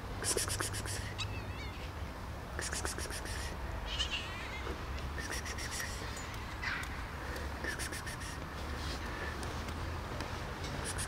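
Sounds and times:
cat meowing: 3.9 - 4.8.

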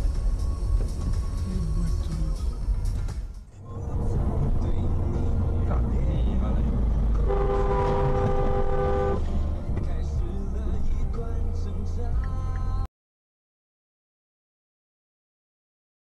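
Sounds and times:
car road and engine rumble: 0.0 - 12.9
car horn: 7.1 - 9.3.

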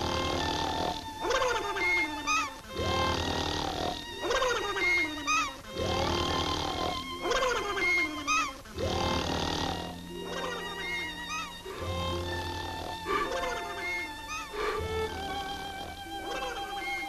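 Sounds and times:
cartoon snoring: 0.0 - 1.8, 2.8 - 4.7, 5.8 - 7.8, 8.8 - 10.6
background music: 0.0 - 17.0.

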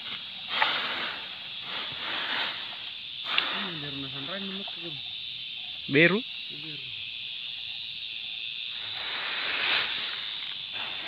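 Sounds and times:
steady high-pitched hiss: 0.0 - 11.0
rustling noise: 8.8 - 11.0.

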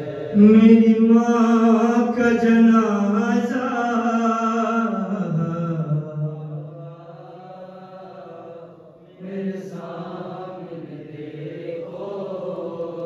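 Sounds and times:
men chanting lament: 0.0 - 13.0.

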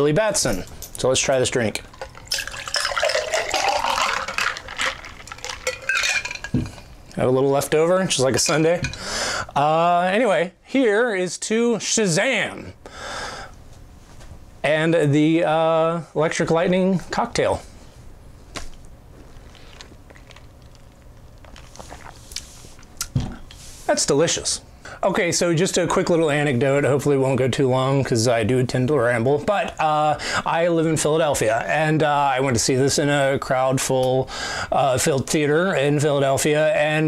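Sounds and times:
low steady hum: 0.0 - 37.0
ice clinking: 1.3 - 7.0
liquid pouring into glass: 1.8 - 6.9.

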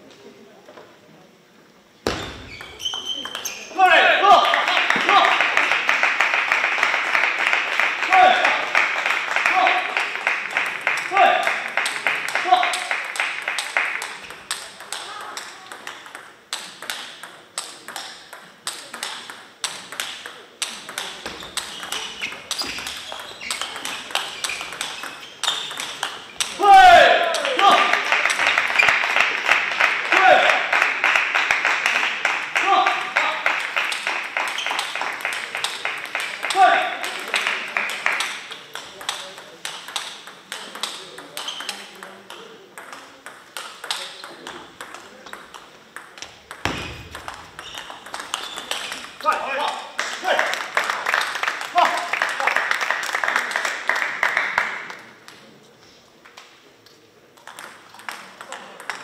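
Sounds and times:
loud voices echoing: 2.1 - 5.9, 7.9 - 15.9, 21.2 - 31.0, 32.5 - 33.5, 35.4 - 38.5
table tennis ball clicking: 2.6 - 3.6, 11.8 - 26.6, 37.8 - 49.2.

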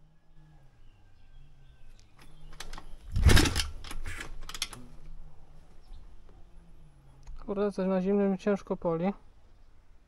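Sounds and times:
motorbike kick-start: 2.2 - 4.9
engine turning over: 2.6 - 4.8.

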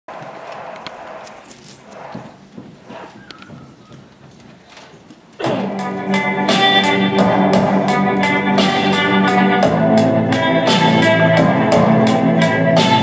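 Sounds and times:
rustling: 0.2 - 5.4
recorded music with guitar: 5.6 - 13.0.

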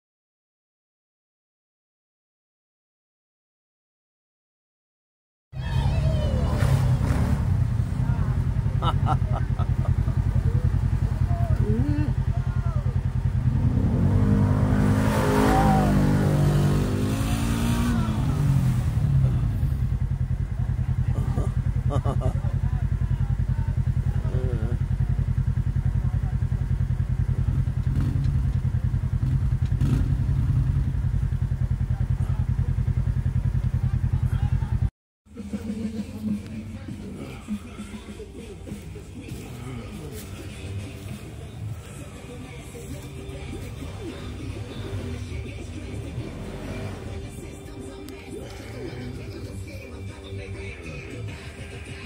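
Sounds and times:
utility vehicle engine revving: 5.6 - 52.0.

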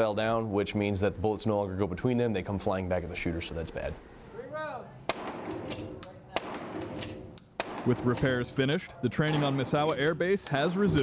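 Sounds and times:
faint gunshots: 5.1 - 10.2
gunshots echoing indoors: 5.1 - 10.2.

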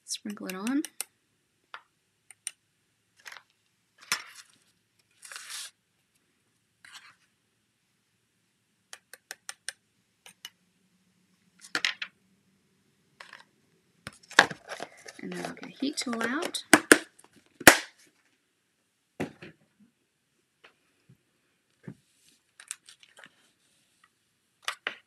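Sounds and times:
plastic clatter: 14.1 - 17.5.

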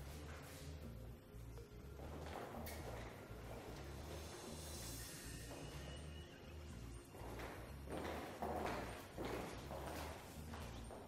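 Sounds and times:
high heels clicking on tiles: 1.9 - 4.4, 7.0 - 11.0.

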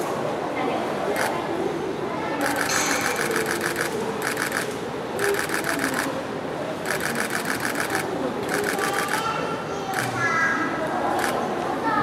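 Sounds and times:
murmur of voices: 0.0 - 12.0
camera shutters clicking: 2.4 - 6.1.

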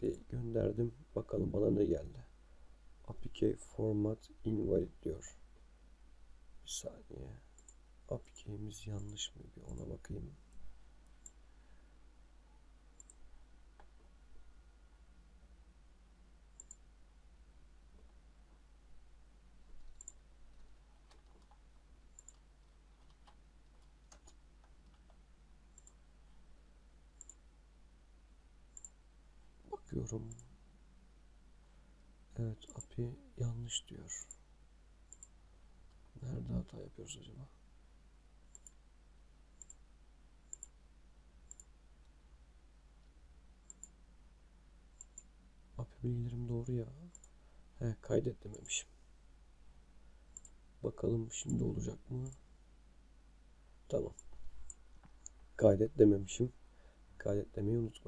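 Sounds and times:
faint computer mouse clicks: 7.5 - 9.9, 13.0 - 13.2, 16.6 - 16.8, 19.8 - 20.2, 21.1 - 22.4, 23.0 - 26.0, 27.2 - 27.4, 28.7 - 29.0, 35.1 - 35.4, 38.5 - 38.8, 39.6 - 39.8, 40.5 - 40.8, 41.5 - 42.2, 43.6 - 44.0, 45.0 - 45.3, 47.1 - 47.4, 50.3 - 50.6.

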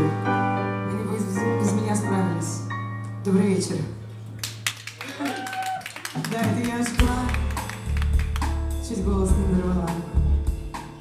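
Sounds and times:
live band playing: 6.2 - 11.0.

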